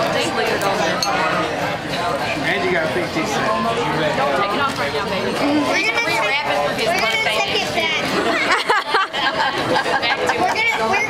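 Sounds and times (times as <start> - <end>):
indistinct restaurant chatter: 0.0 - 11.0.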